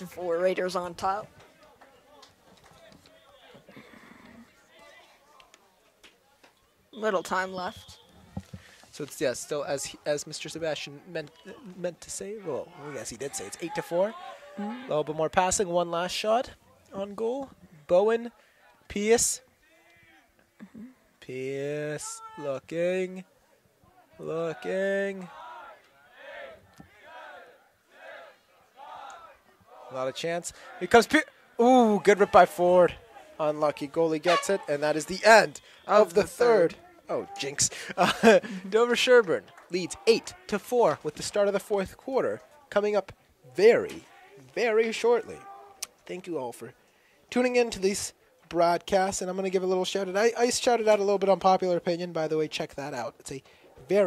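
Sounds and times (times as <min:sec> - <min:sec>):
distant people shouting: 0:23.9 - 0:33.4.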